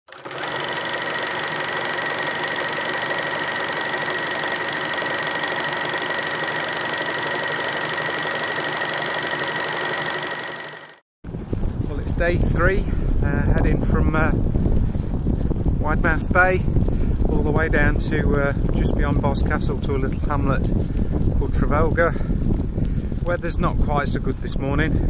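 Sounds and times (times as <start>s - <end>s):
film projector whirring: 0.1s - 11.0s.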